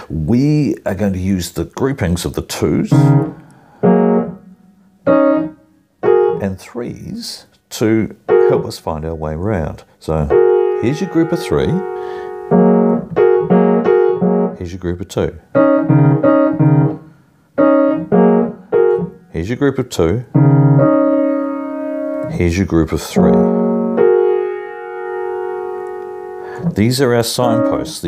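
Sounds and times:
piano keys struck: 2.7s - 6.4s, 10.3s - 14.6s, 20.4s - 28.0s.

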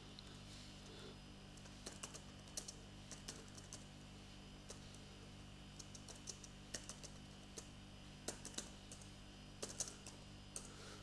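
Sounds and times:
low steady hum: 0.0s - 11.0s
keyboard typing clicks: 1.6s - 3.9s, 5.8s - 10.8s.

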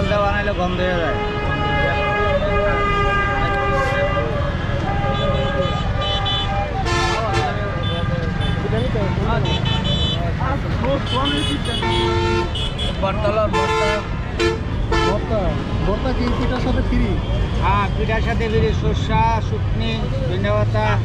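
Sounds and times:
vehicle horns honking: 0.0s - 15.6s
low traffic rumble: 0.0s - 21.0s.

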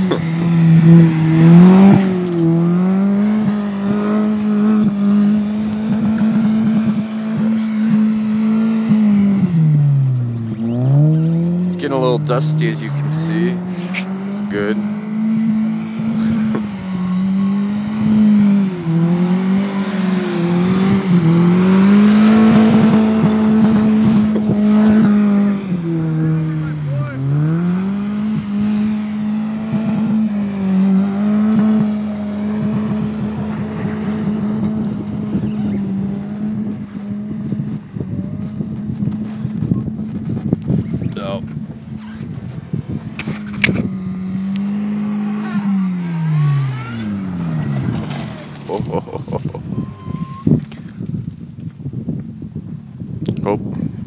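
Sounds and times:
car engine at high revs: 0.0s - 53.9s
tyre and wind rush: 0.0s - 54.0s.

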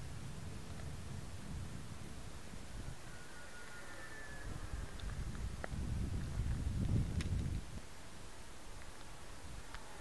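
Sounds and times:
low rumble on microphone: 4.4s - 7.8s.

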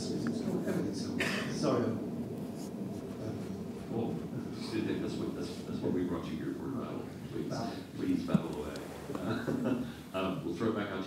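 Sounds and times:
faint scratchy rustle: 0.0s - 10.4s
low room hum: 0.0s - 11.0s.

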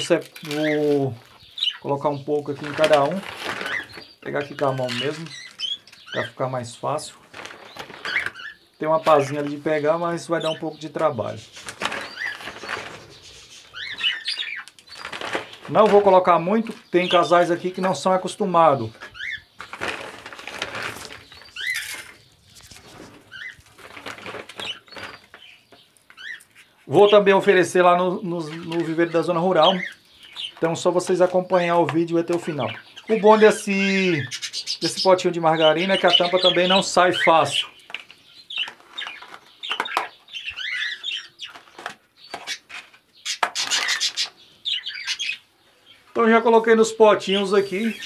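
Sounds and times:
crumbly food rustling: 0.0s - 26.7s, 35.8s - 44.3s
birds chirping: 0.0s - 48.0s
plastic tubs clattering: 2.0s - 26.2s, 27.1s - 33.9s, 34.9s - 44.3s.

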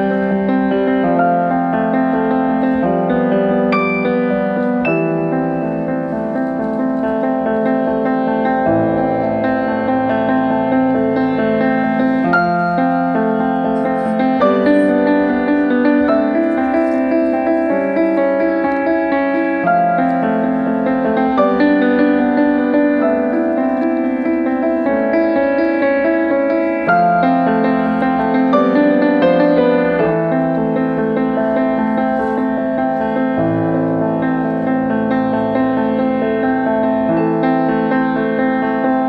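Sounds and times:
solo grand piano playing: 0.0s - 39.0s.

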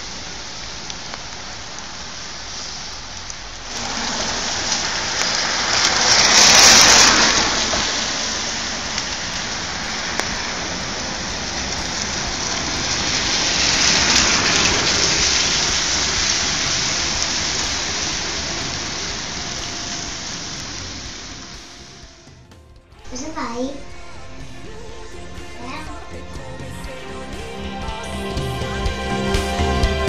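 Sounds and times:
car tyres hissing on wet asphalt: 0.0s - 22.4s.

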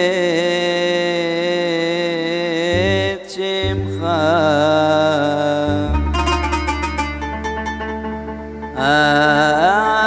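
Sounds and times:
man singing prayer melody: 0.0s - 6.8s, 8.8s - 10.0s
plucked notes run: 5.6s - 9.2s
low bass note accompaniment: 5.7s - 8.8s.

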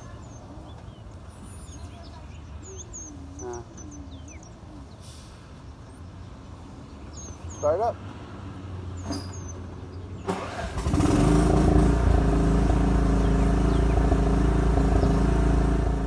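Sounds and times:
mower engine running loud: 10.3s - 16.0s.

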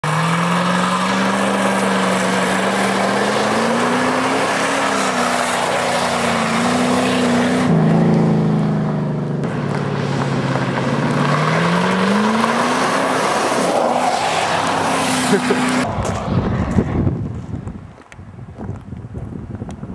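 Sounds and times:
car engine revving: 0.0s - 15.9s
tyres spinning on gravel: 0.2s - 7.6s.

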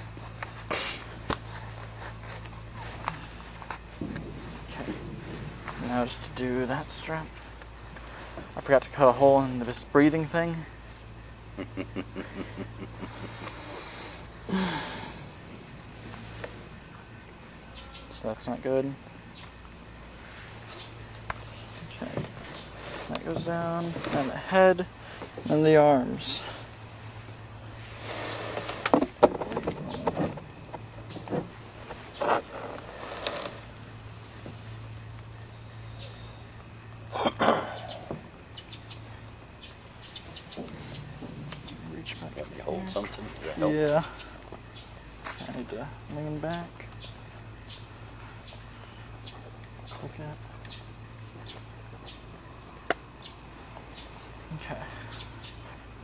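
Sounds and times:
insects chirping: 0.0s - 56.0s
man chuckling softly: 11.6s - 13.6s
man breathing heavily: 13.0s - 15.5s.

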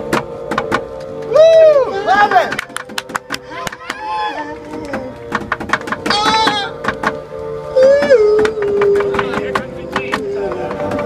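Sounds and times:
person shouting: 1.3s - 2.5s, 6.1s - 6.8s.

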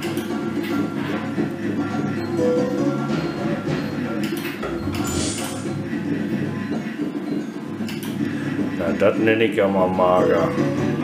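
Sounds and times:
slot machine game music: 2.0s - 7.8s, 9.8s - 11.0s
sustained low tones: 2.4s - 6.7s.

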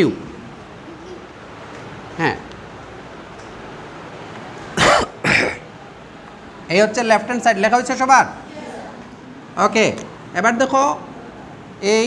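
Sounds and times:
short coughs: 4.8s - 5.7s.

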